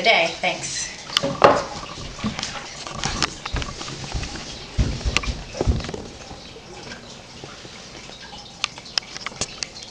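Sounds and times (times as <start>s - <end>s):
handling knocks and bumps: 1.2s - 7.2s
low thumps: 1.4s - 7.5s.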